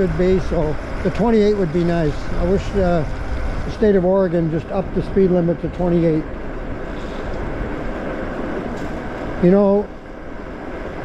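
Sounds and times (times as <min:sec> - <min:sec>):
wind over microphone: 0:00.0 - 0:11.0.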